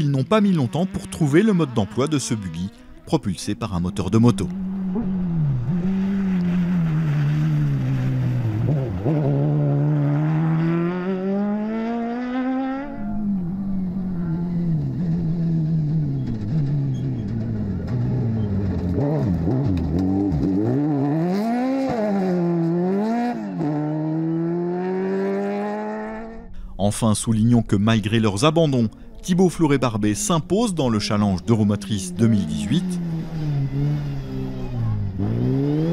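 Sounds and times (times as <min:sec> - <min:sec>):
buggy engine accelerating: 0:00.0 - 0:26.7, 0:28.0 - 0:35.9.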